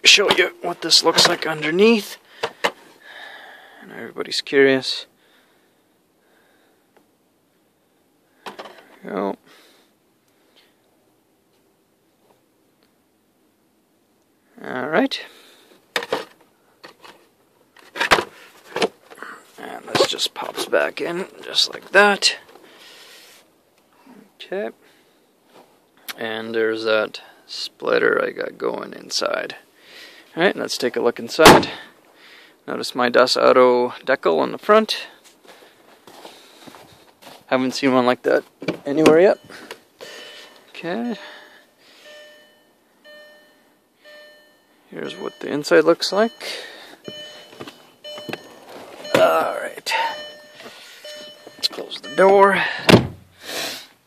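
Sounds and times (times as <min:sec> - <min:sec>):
car warning chime dinging: 0:38.9 - 0:52.9.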